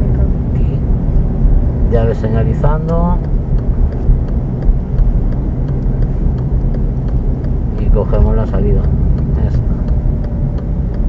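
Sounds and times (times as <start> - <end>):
car engine and tyres at low speed: 0.0 - 11.0
turn signal ticking: 0.0 - 11.0.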